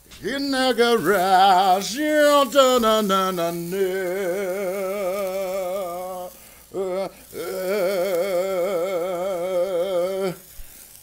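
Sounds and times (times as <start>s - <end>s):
man singing long notes: 0.1s - 10.5s.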